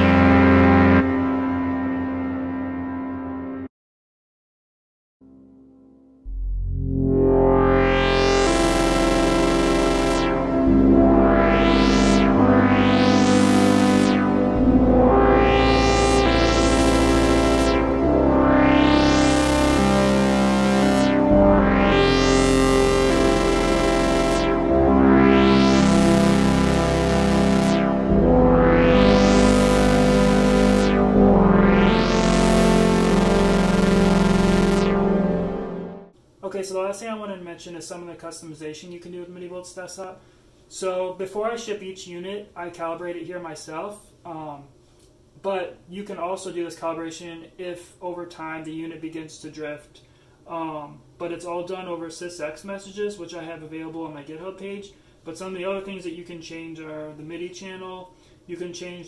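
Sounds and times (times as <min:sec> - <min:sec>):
synthesizer playing sustained chords: 0:00.0 - 0:03.7, 0:06.2 - 0:36.2.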